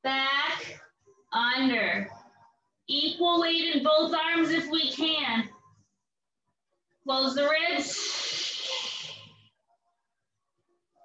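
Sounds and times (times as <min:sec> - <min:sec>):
woman breathy exhale: 0:07.9 - 0:09.2.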